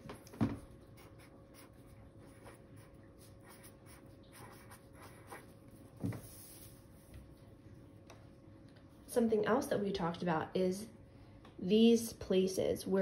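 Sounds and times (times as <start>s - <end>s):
marker scratching on paper: 1.0s - 6.8s.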